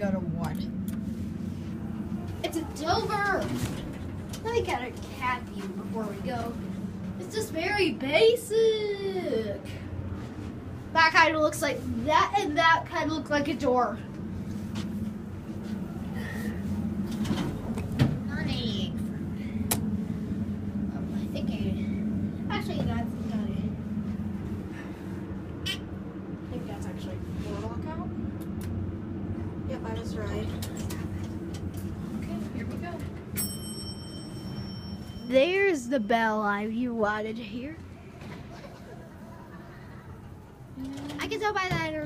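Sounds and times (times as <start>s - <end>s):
elevator humming: 0.0s - 42.0s
elevator bell ding: 33.2s - 36.6s.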